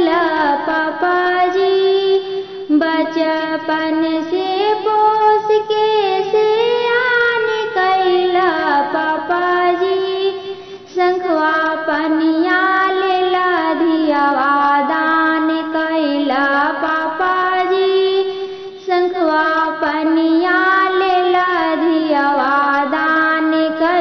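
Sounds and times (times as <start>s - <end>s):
woman singing in a high voice: 0.0s - 24.0s.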